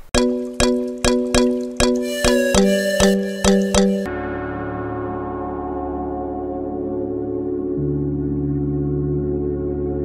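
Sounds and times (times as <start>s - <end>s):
ringing bell-like chord: 2.0s - 4.2s.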